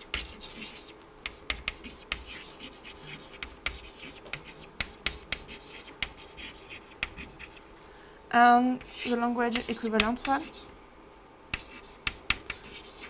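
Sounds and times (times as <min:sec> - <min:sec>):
chalk scratching on blackboard: 0:00.0 - 0:07.6, 0:08.8 - 0:10.7, 0:11.6 - 0:13.0
chalk tapping on board: 0:00.0 - 0:07.6, 0:08.8 - 0:10.7, 0:11.5 - 0:13.0.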